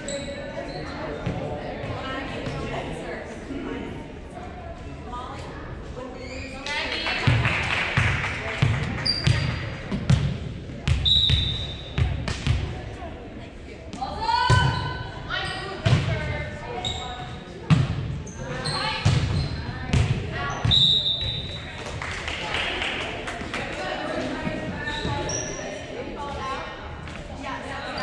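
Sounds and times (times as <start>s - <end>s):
sneaker squeaks on hardwood: 11.0s - 12.0s, 18.3s - 19.8s, 24.7s - 25.8s.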